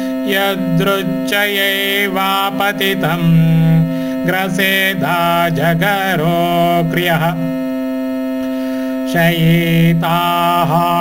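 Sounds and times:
chanted syllable: 0.0s - 11.0s
steady electronic drone: 0.0s - 11.0s.

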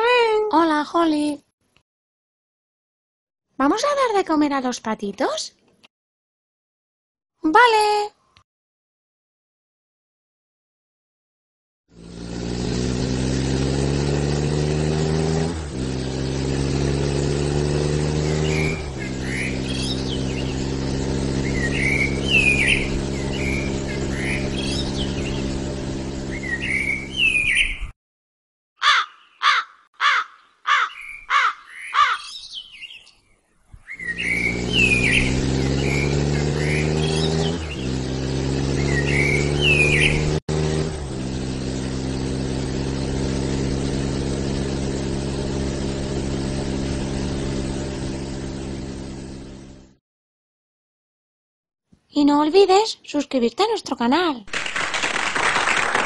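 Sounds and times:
car engine running: 11.9s - 27.6s, 34.0s - 50.0s
birds chirping: 18.0s - 27.9s, 28.8s - 40.4s.

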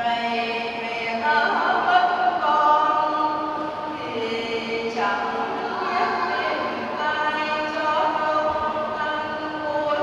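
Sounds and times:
choir singing a slow hymn: 0.0s - 10.0s.

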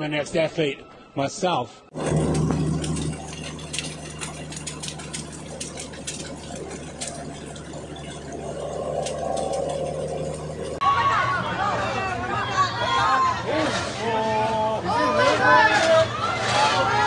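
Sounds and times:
higher hum: 1.9s - 10.8s
vehicle engine and road noise: 1.9s - 10.8s.

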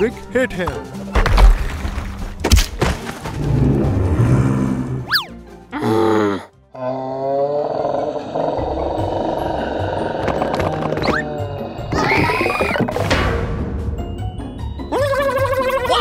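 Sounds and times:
background music: 0.0s - 16.0s
wavering roar-like groan: 3.4s - 5.1s, 5.8s - 12.4s.

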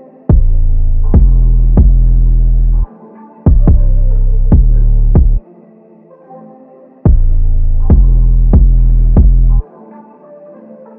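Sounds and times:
deep bass note: 0.3s - 2.9s, 3.5s - 5.4s, 7.1s - 9.6s.

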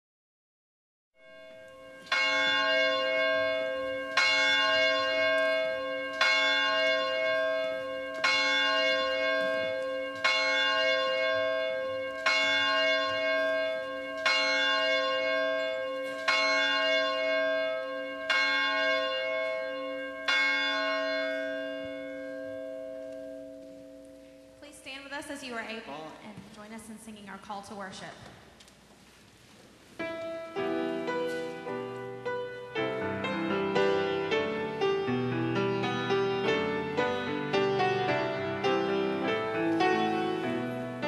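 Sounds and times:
church bell tolling: 1.2s - 25.8s, 30.1s - 41.0s.

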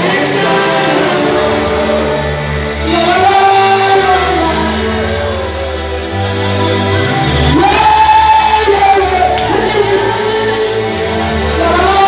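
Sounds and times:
bass and keyboard backing: 0.0s - 12.0s
person singing a long high note: 0.0s - 12.0s.

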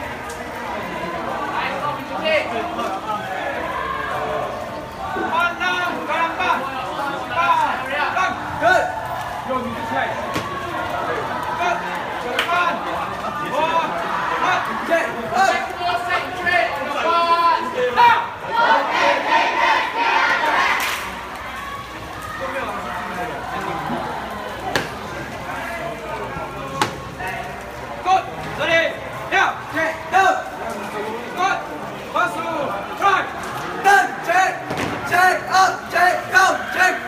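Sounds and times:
background chatter: 0.0s - 37.0s
cadets shouting in unison: 18.0s - 21.0s.

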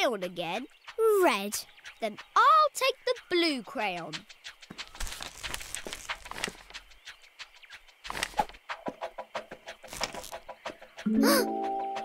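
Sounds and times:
cartoon footsteps patter: 0.0s - 12.0s.

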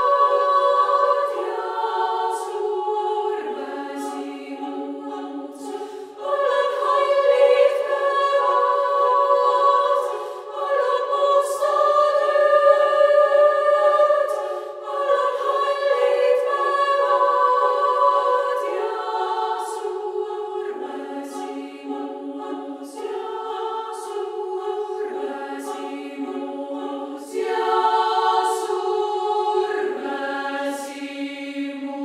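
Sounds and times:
female choir singing a cappella: 0.0s - 32.0s.

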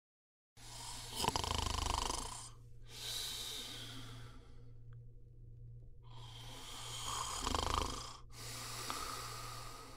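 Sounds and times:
person snoring: 0.6s - 4.6s, 6.1s - 9.9s
low hum: 2.3s - 9.9s.

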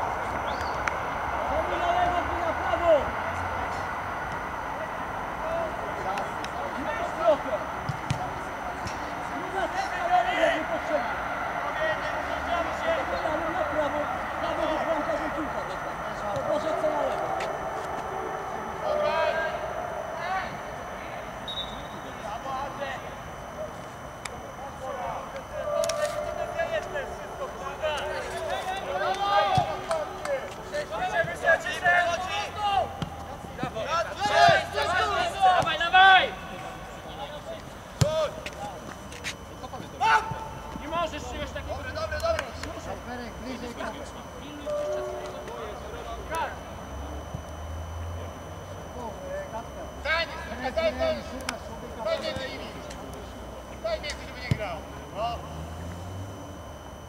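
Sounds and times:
men shouting: 8.5s - 21.2s, 33.7s - 36.4s.

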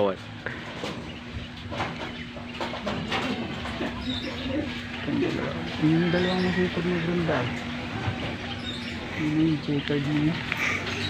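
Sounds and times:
steady low hum: 0.0s - 11.0s
pigeons cooing: 0.4s - 11.0s.

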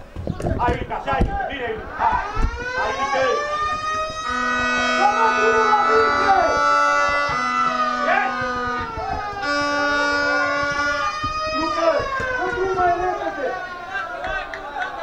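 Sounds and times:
horns blowing long notes: 1.9s - 14.2s
people shouting: 2.0s - 15.0s.

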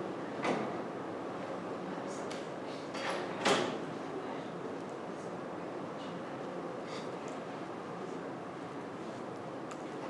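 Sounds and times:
steady background hum: 0.0s - 10.0s.

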